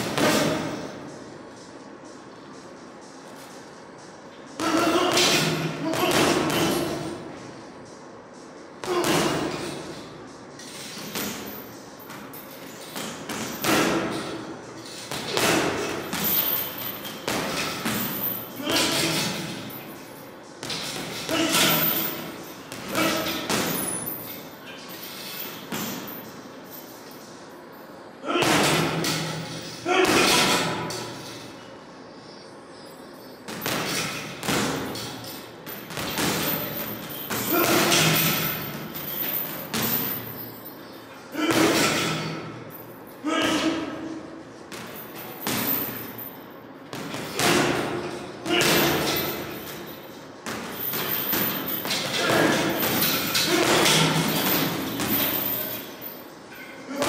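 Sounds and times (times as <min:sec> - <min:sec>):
gloves punching heavy bag: 0:04.6 - 0:07.2, 0:15.1 - 0:19.6, 0:33.5 - 0:40.3, 0:46.9 - 0:49.7, 0:50.4 - 0:55.7.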